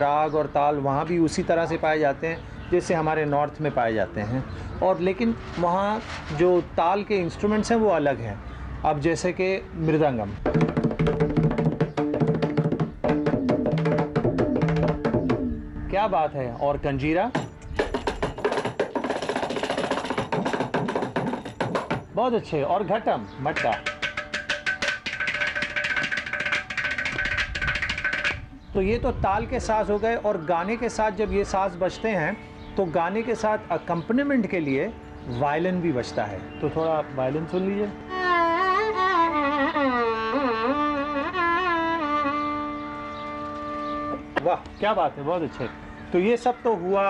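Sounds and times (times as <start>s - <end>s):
violin melody with sliding notes: 22.4s - 28.6s, 30.6s - 47.0s
frame drum hand strokes: 23.6s - 28.4s.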